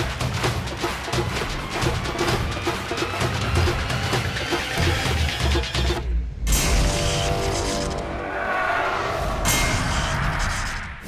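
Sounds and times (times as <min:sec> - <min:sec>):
trailer music hits: 0:00.0 - 0:11.0.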